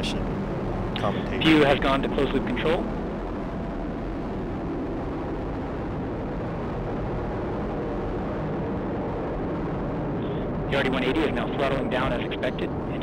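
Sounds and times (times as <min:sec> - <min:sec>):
rocket engine deep rumble: 0:00.0 - 0:13.0.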